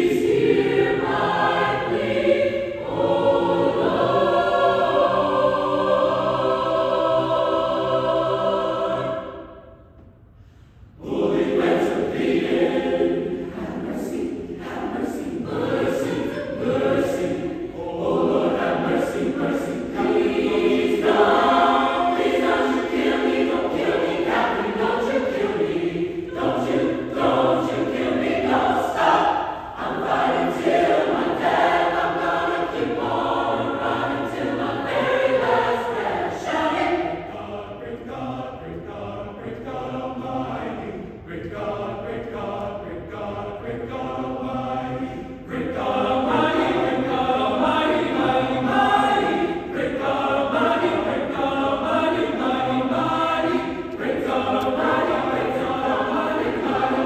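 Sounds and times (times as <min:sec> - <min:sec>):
mixed choir singing: 0:00.0 - 0:10.1, 0:10.9 - 0:57.0.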